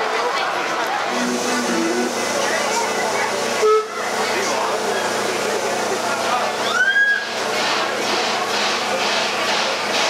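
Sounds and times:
people chattering: 0:00.0 - 0:10.0
horn toot: 0:01.1 - 0:02.2.

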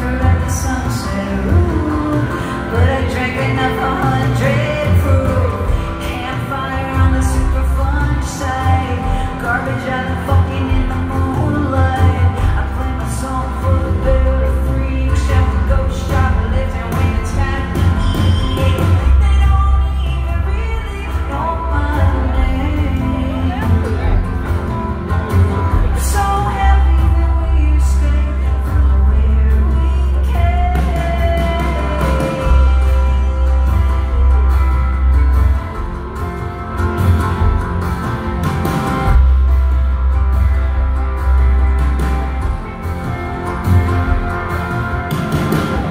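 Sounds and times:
acoustic guitar: 0:00.0 - 0:45.9
drum kit: 0:00.0 - 0:45.9
electric guitar: 0:00.0 - 0:45.9
live rock band playing: 0:00.0 - 0:45.9.

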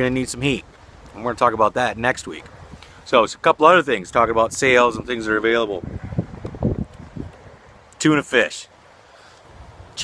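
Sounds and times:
wind bumps on microphone: 0:04.1 - 0:07.6
microphone handling rustling: 0:05.8 - 0:07.7.

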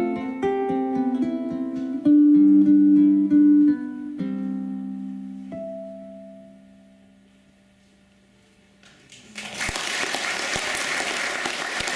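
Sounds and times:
audience applause: 0:09.1 - 0:11.9.

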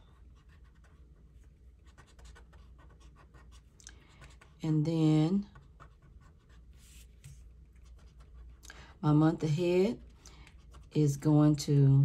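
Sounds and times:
marker pen scratching on paper: 0:00.0 - 0:08.6, 0:09.6 - 0:11.3.

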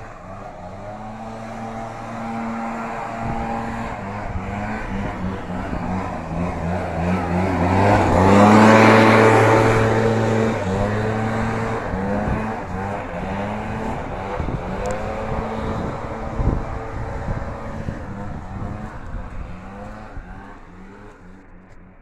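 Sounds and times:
small petrol engine running: 0:00.0 - 0:22.0.

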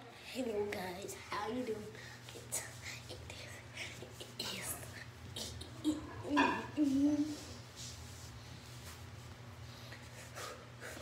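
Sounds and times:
low steady hum: 0:00.0 - 0:11.0
girl whispering: 0:00.2 - 0:07.5.

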